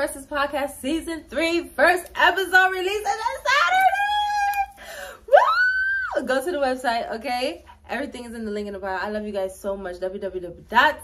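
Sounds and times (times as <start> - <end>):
woman shouting woo: 5.3 - 6.2.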